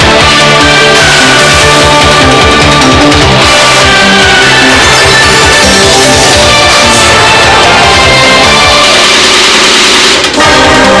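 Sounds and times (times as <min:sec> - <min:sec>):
brassy electronic chord: 0:00.0 - 0:11.0.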